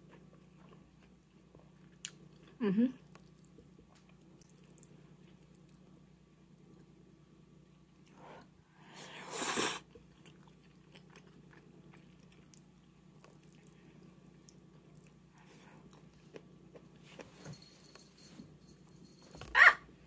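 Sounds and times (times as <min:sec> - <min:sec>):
quiet chewing with mouth clicks: 0:00.0 - 0:07.0, 0:09.9 - 0:17.3
person slurping noodles: 0:09.2 - 0:09.9.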